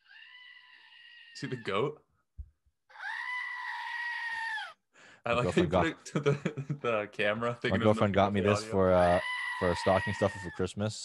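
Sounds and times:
goat toy bleating: 0:02.9 - 0:04.8, 0:09.0 - 0:10.6.

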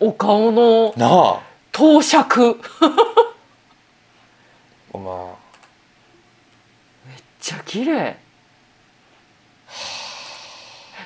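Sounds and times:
person breathing close to microphone: 0:09.7 - 0:11.0.

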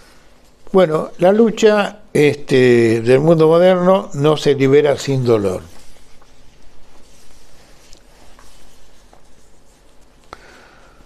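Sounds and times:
paper rustling: 0:05.1 - 0:10.4.

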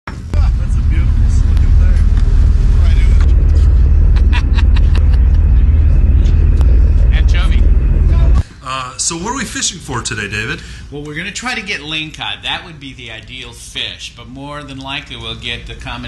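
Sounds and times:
loud low rumble: 0:00.1 - 0:09.6.

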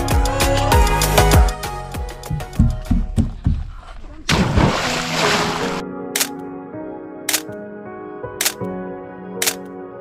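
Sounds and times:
background music with held notes: 0:00.0 - 0:03.3, 0:04.9 - 0:10.0
person splashing into water: 0:04.3 - 0:05.8
sharp clicks: 0:06.2 - 0:06.4, 0:07.3 - 0:07.6, 0:08.4 - 0:08.7, 0:09.4 - 0:09.7.

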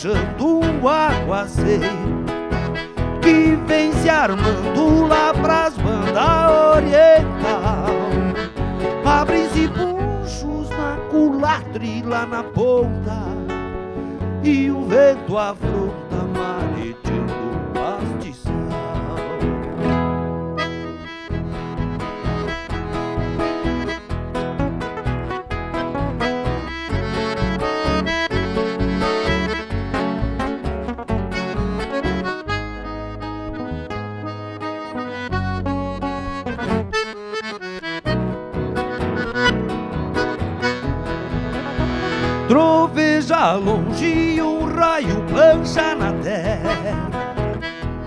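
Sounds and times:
accordion melody: 0:00.0 - 0:48.0
acoustic guitars strummed and plucked: 0:00.0 - 0:48.0
electric bass: 0:00.0 - 0:48.0.

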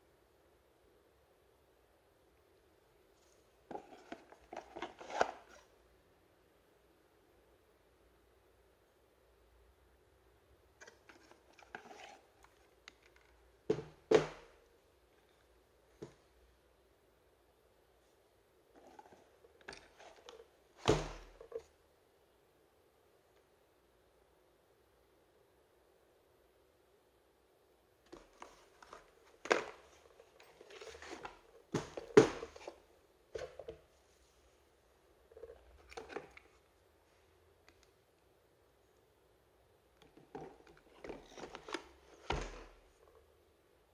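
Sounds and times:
cardboard and plastic rustling: 0:03.3 - 0:05.7, 0:10.8 - 0:14.5, 0:28.1 - 0:34.0, 0:40.1 - 0:43.0
cardboard box rustling: 0:28.2 - 0:32.8.

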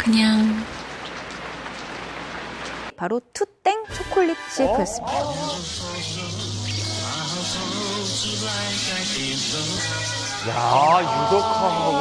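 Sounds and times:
steady rain hiss: 0:00.0 - 0:02.9.

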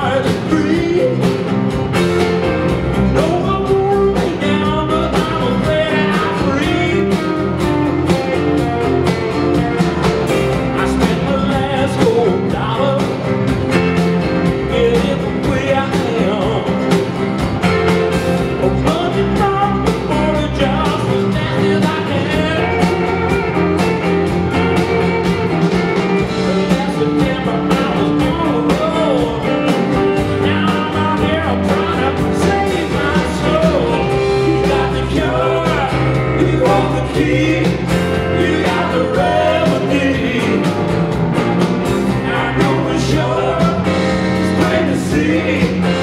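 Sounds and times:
acoustic guitar: 0:00.0 - 0:46.0
bass guitar: 0:00.0 - 0:46.0
drums with steady beat: 0:00.0 - 0:46.0
electric guitar: 0:00.0 - 0:46.0.

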